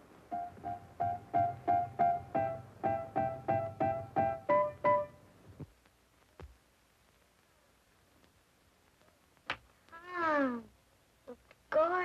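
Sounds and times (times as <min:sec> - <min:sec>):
girl saying ooh: 0:10.0 - 0:10.7.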